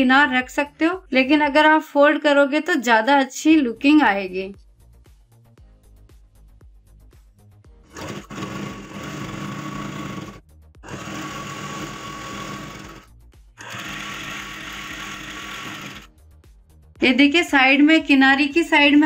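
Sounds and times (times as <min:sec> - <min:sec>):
sewing machine running: 0:07.9 - 0:16.1.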